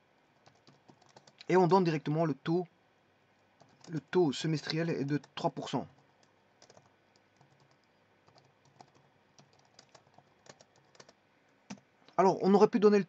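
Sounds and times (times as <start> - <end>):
keyboard typing: 0.4 - 1.5, 3.6 - 11.8.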